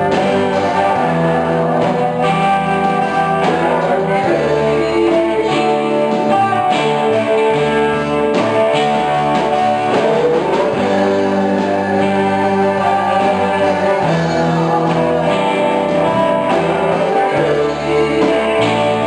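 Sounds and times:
instrumental rock band music: 0:00.0 - 0:19.0.

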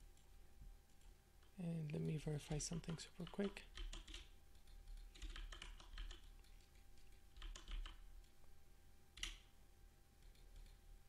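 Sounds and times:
low steady background hum: 0:00.0 - 0:11.0
keyboard keys clicking: 0:02.4 - 0:08.3.

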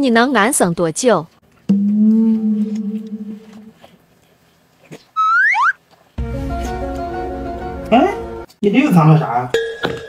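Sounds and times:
music chord with deep bass: 0:01.7 - 0:03.7, 0:06.2 - 0:08.5
upward sweeps: 0:01.7 - 0:03.8
slide whistle glide: 0:05.2 - 0:05.8.

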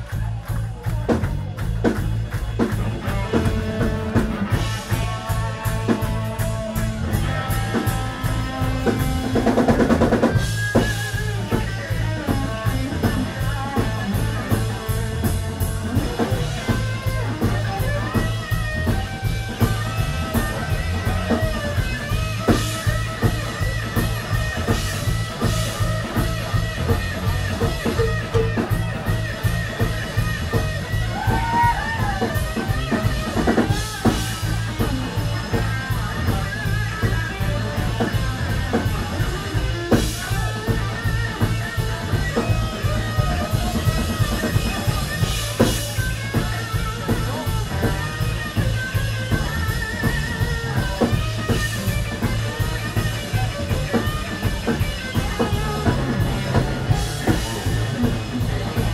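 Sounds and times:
drum kit beat: 0:00.0 - 0:58.9
electric guitar lead: 0:00.0 - 0:58.9.

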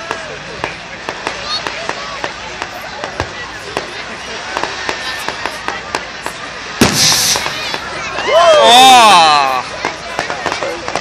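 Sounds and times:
fireworks popping and crackling: 0:00.0 - 0:11.0
loud firework bang: 0:06.8 - 0:08.4.

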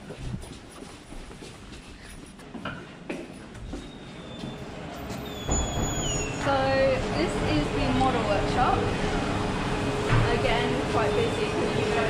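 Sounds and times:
door squealing: 0:04.2 - 0:06.5.

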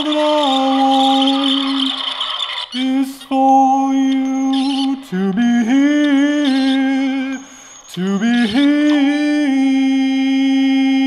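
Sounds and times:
high grainy rattle: 0:00.0 - 0:03.2
man singing long note: 0:08.0 - 0:11.0.

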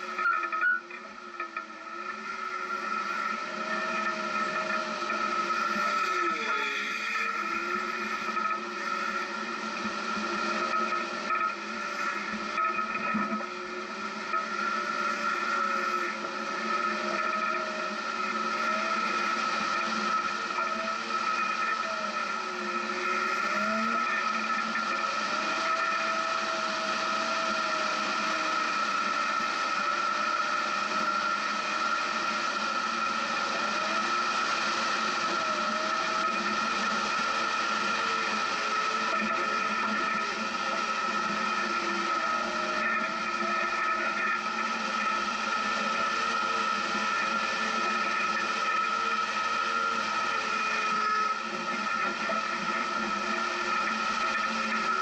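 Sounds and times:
off-road vehicle engine running: 0:00.0 - 0:55.0
steady high whine: 0:00.0 - 0:55.0.

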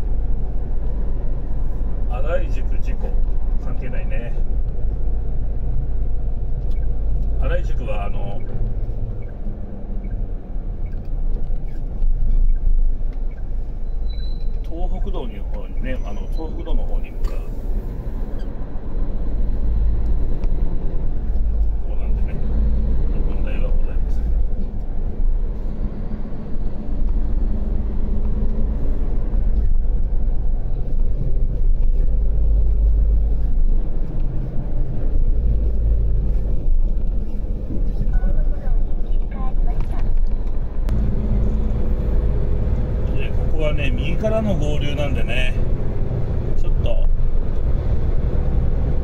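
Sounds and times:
road noise: 0:00.0 - 0:49.0
diesel truck engine running: 0:12.2 - 0:49.0.

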